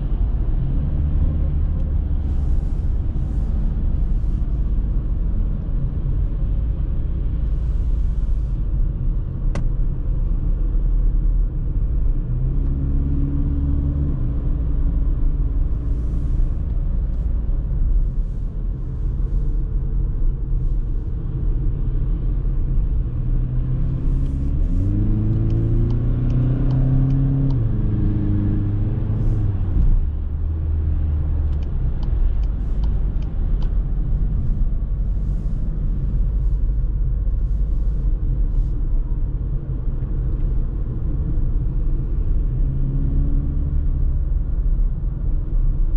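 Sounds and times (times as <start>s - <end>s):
road and tyre noise: 0.0s - 45.9s.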